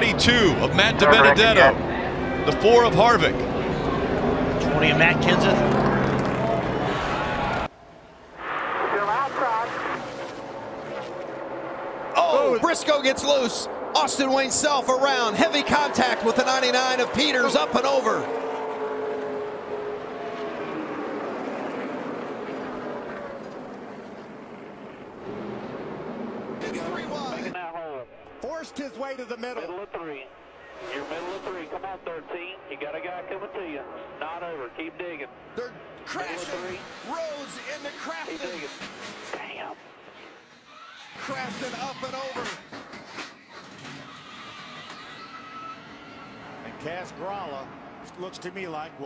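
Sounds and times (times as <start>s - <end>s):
race truck engines: 0.0s - 49.0s
crowd roar: 3.4s - 23.4s.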